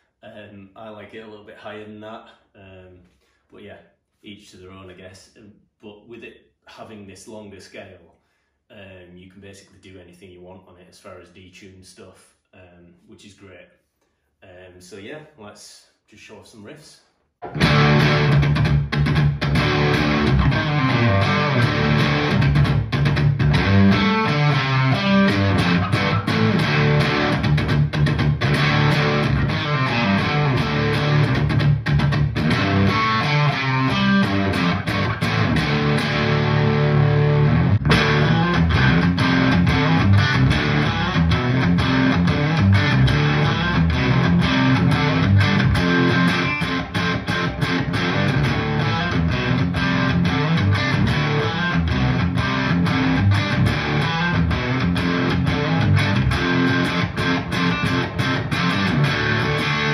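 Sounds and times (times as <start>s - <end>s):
electric guitar riffs through amp: 17.4s - 59.9s.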